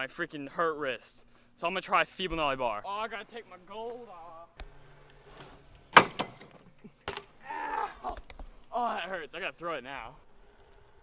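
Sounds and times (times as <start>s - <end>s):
pained voice: 7.4s - 9.0s.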